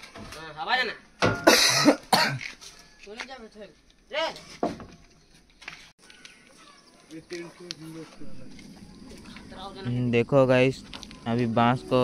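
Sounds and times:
person coughing loudly: 1.4s - 2.5s.

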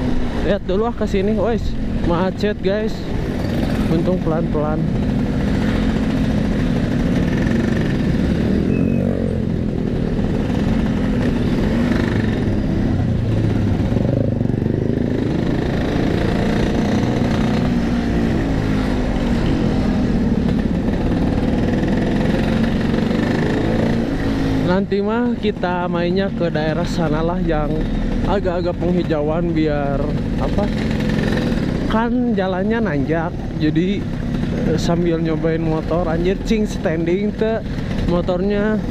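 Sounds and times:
scooter engine running: 3.2s - 38.9s.

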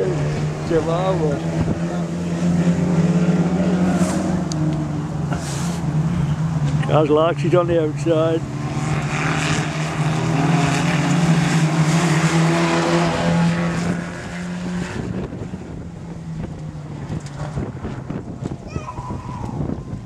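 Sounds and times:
race car engines: 0.0s - 20.0s
wind buffeting microphone: 0.3s - 2.4s, 13.7s - 20.0s.

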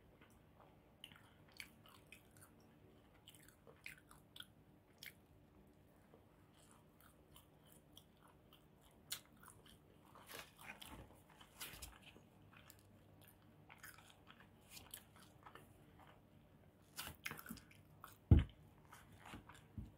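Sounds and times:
low steady background hum: 0.0s - 19.9s
close-up chewing with mouth clicks: 0.2s - 16.4s, 17.0s - 19.8s.

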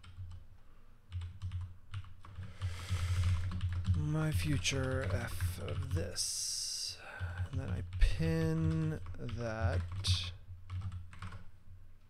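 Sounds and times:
computer keyboard typing: 0.0s - 0.4s, 1.1s - 11.5s.

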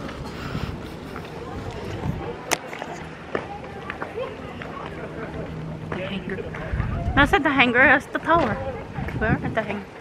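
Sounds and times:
wind on microphone: 0.2s - 2.4s, 6.5s - 7.7s, 8.4s - 9.9s.

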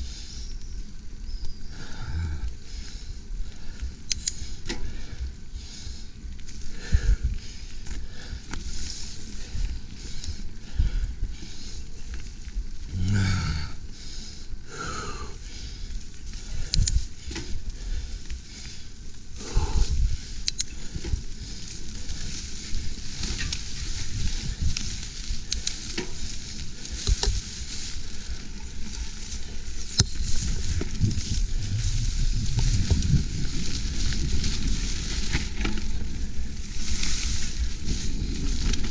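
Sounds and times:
bike tyre noise: 0.0s - 38.9s
grass rustling against bike: 0.0s - 38.9s
bike clicks and rattles: 0.6s - 12.9s, 15.1s - 38.9s.

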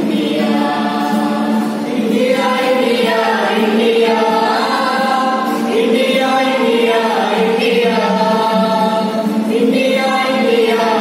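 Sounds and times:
mixed choir singing: 0.0s - 11.0s.

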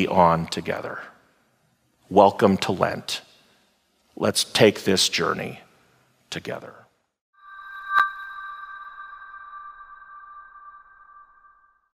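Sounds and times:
electronic two-tone chime: 7.4s - 11.9s.

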